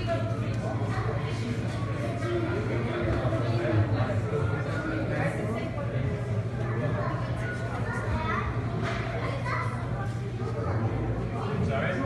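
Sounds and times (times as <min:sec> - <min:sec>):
children and people chattering: 0:00.0 - 0:12.0.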